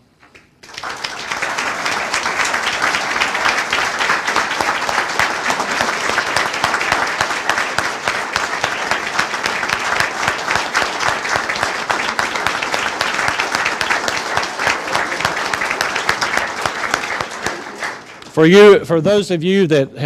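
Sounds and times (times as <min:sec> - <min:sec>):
large audience applauding: 0:00.3 - 0:18.6.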